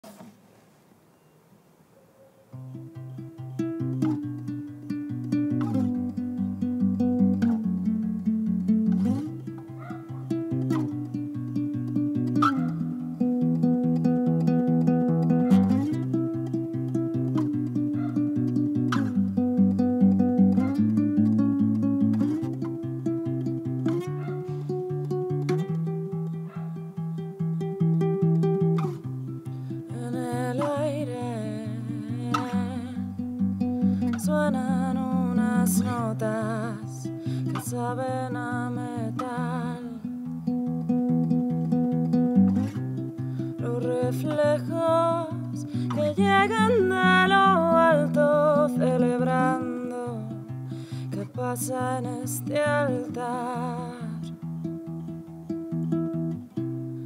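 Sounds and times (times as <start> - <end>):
acoustic guitar fingerpicking: 2.3 - 57.0.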